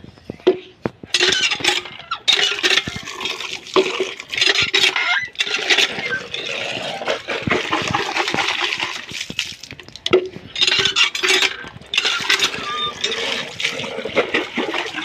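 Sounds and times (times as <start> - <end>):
water splashing onto concrete: 2.6 - 15.0.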